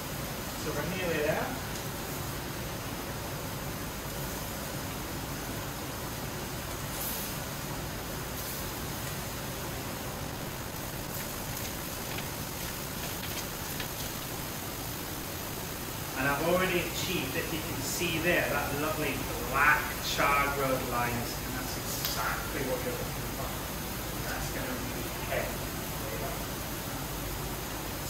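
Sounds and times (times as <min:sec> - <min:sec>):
hiss of gas burners: 0:00.0 - 0:28.0
faint light clicks: 0:22.0 - 0:22.2.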